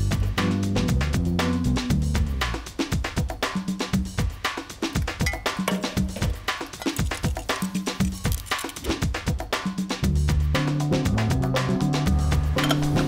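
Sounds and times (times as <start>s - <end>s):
music with percussive beat: 0.0s - 13.0s.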